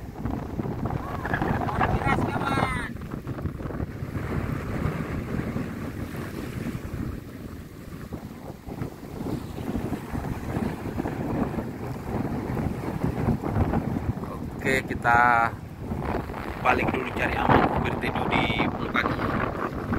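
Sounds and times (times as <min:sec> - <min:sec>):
choppy waves washing around boat: 0:00.0 - 0:19.9
wind buffeting microphone: 0:00.0 - 0:19.9.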